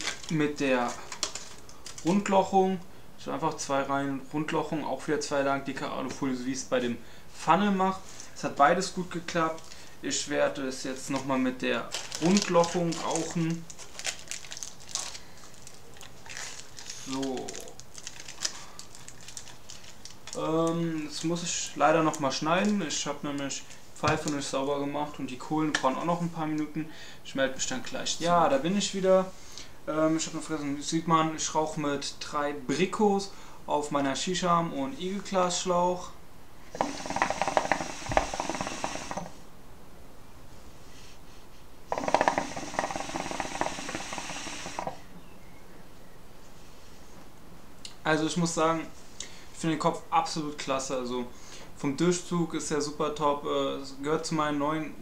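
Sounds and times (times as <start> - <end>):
hookah water bubbling: 36.7 - 39.4, 41.9 - 45.1.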